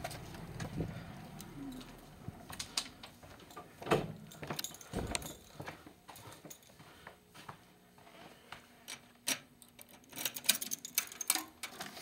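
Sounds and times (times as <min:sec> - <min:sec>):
small metal parts clicking: 0:08.9 - 0:12.0.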